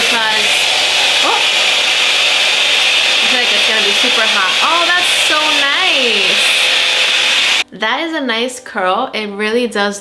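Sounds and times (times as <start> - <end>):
hot-air curling wand blowing: 0.0 - 7.6.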